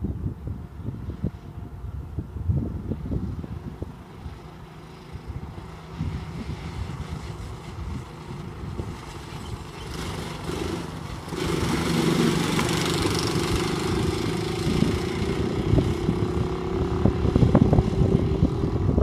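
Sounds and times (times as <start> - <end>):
go-kart engines running: 2.7 - 19.0.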